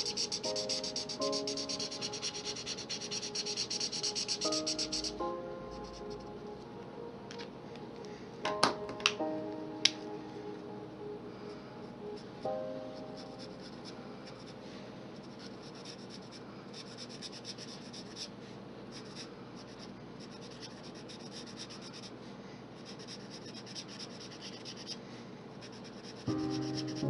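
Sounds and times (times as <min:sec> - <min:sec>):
marker scratching on paper: 0:00.0 - 0:05.2, 0:15.2 - 0:18.3, 0:18.9 - 0:22.1, 0:22.8 - 0:25.0, 0:25.6 - 0:27.0.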